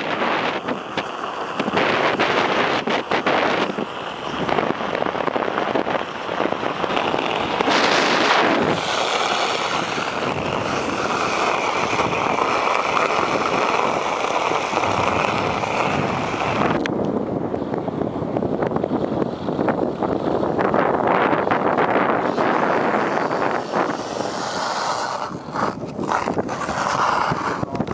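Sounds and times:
ice skates scraping on ice: 0.0 - 16.8, 21.9 - 27.9
wind on microphone: 0.0 - 27.9
higher hiss: 7.7 - 11.8, 22.2 - 25.7.

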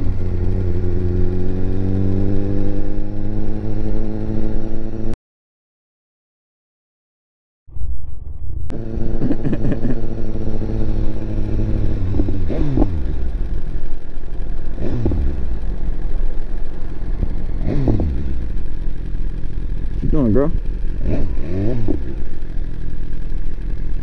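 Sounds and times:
motorcycle engine revving: 0.0 - 5.2, 8.7 - 24.0.

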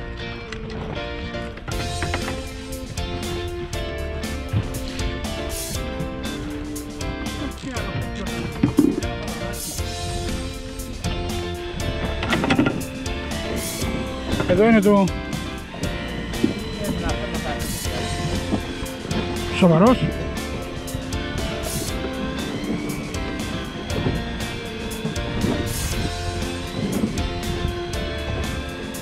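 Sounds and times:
background music with steady beat: 0.0 - 29.0.

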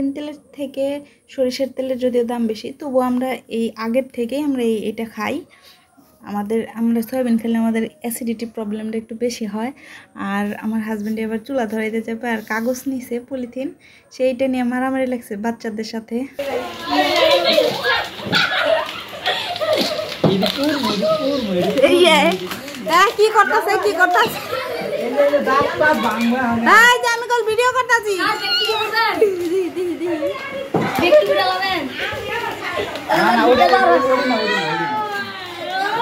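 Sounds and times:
children shouting and squabbling: 16.3 - 36.0.

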